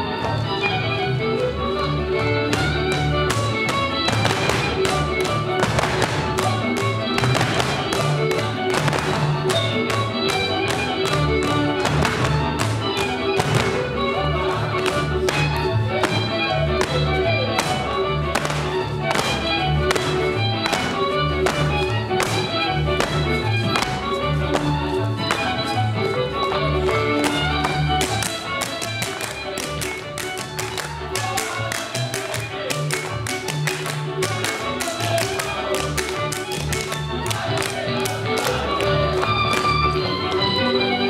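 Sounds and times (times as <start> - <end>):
lively folk dance music: 0.0 - 41.0
boots stamping on stage floor: 2.1 - 38.6.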